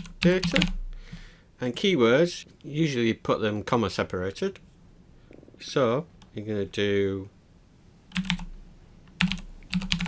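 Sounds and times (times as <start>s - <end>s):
computer keyboard typing: 0.0s - 0.8s, 8.1s - 8.5s, 9.1s - 10.0s.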